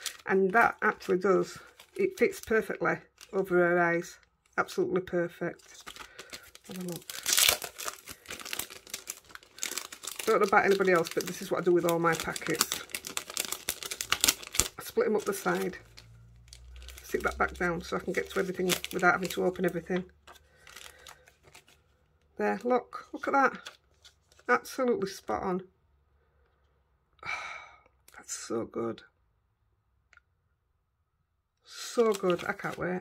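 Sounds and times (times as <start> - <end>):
plastic packet crinkling: 0.0 - 4.2, 5.6 - 21.9, 32.0 - 33.0.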